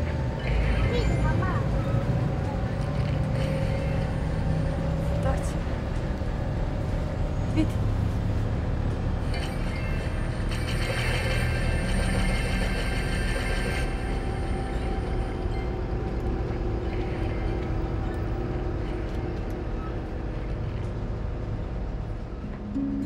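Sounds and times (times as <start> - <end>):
bus engine and road rumble: 0.0 - 23.0.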